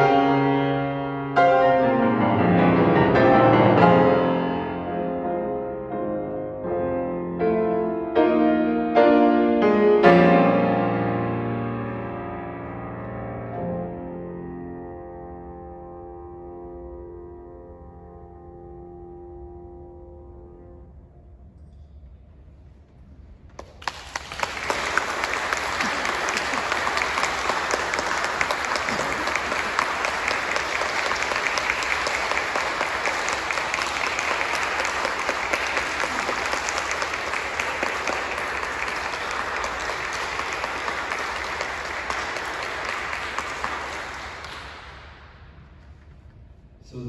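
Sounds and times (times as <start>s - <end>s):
audience applauding: 23.6s - 45.3s.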